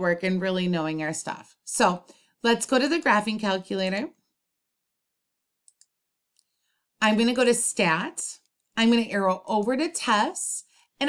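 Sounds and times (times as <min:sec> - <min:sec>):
computer mouse clicks: 0:05.6 - 0:06.6.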